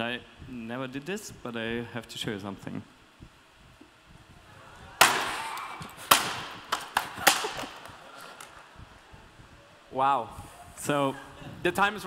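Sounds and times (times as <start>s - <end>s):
knocks of breaking pieces: 6.0s - 7.9s.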